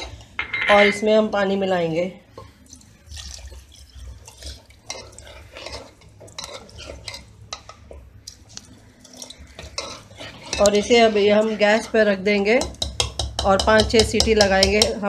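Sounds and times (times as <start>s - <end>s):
ladle clinking and scraping pot: 0.0s - 1.0s, 3.2s - 15.0s
liquid sloshing: 2.3s - 11.9s.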